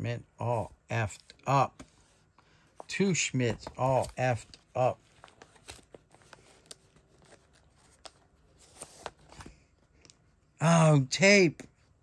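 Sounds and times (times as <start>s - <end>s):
cards sliding in plastic sleeve: 3.5s - 9.6s.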